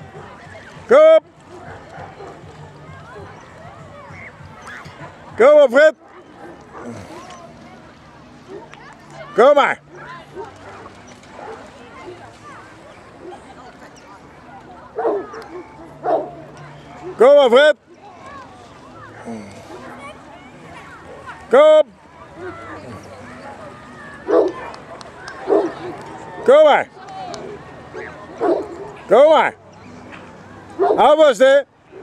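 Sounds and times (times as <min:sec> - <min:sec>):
low murmuring voices: 0:00.0 - 0:32.0
dog barking: 0:15.0 - 0:16.4, 0:24.3 - 0:24.8, 0:25.5 - 0:25.8, 0:28.0 - 0:29.0, 0:30.8 - 0:31.1.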